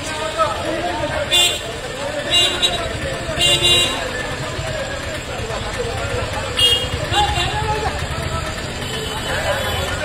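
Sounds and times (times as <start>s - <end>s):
people talking and calling out: 0.0s - 10.0s
traffic rumble: 0.0s - 10.0s.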